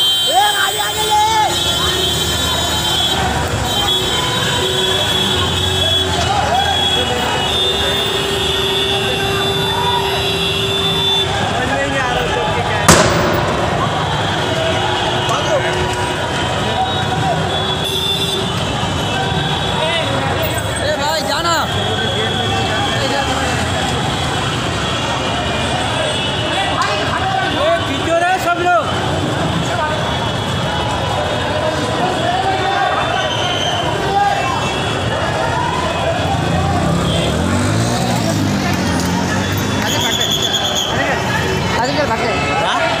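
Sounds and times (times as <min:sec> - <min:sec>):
crowd talking and calling out: 0:00.0 - 0:43.0
roadway noise: 0:00.0 - 0:43.0
street din with voices: 0:00.0 - 0:43.0
people shouting loudly: 0:31.8 - 0:37.0.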